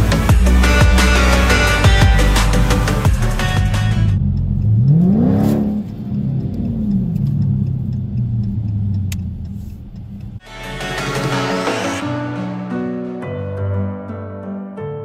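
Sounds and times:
music: 0.0 - 4.7, 10.4 - 15.0
car engine revving: 0.0 - 12.0.

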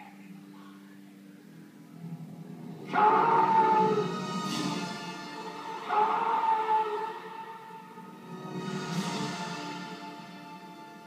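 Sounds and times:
man yelling through tv speakers: 2.9 - 4.2, 5.8 - 7.8.

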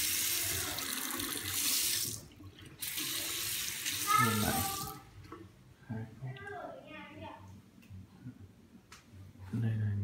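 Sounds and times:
faucet water running into sink: 0.0 - 5.0.

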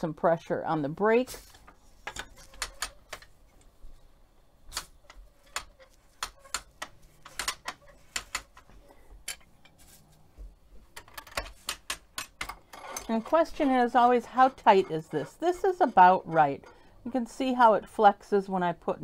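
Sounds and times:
wooden loom clicks and knocks: 2.0 - 3.3, 4.7 - 9.7, 10.9 - 16.8.

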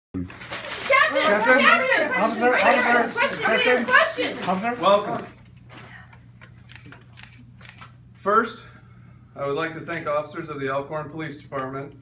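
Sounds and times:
low room hum: 0.2 - 12.0
camera shutter clicks: 6.6 - 8.0, 9.9 - 10.1.

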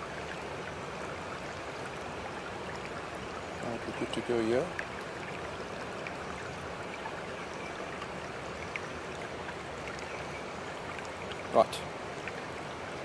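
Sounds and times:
running water: 0.0 - 13.0.

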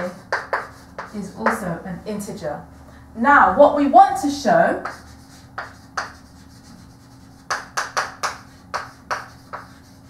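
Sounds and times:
chalk strokes on blackboard: 0.0 - 1.7, 4.8 - 10.0
chalk tapping on blackboard: 0.0 - 1.7, 4.8 - 10.0.

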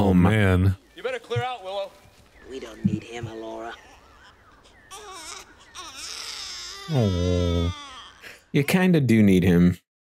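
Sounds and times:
infant crying: 3.4 - 8.8
man's low voice: 6.9 - 7.8.

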